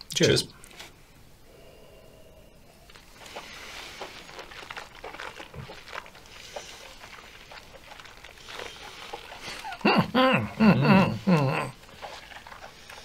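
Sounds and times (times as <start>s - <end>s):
breaths: 0.9s - 4.5s, 6.2s - 7.4s, 12.5s - 13.0s
sipping: 1.5s - 13.0s
lip smacks: 2.9s - 9.8s.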